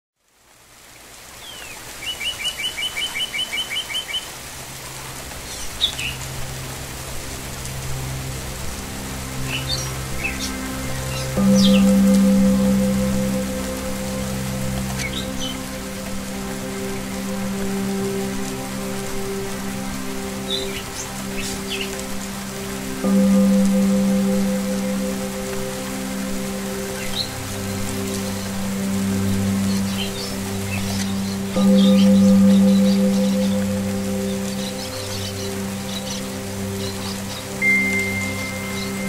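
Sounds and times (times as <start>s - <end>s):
songbirds calling: 1.4s - 39.0s
steady rushing hiss: 4.3s - 39.0s
soft music of low held notes: 4.4s - 39.0s
bird trill: 11.1s - 13.4s, 29.8s - 36.2s.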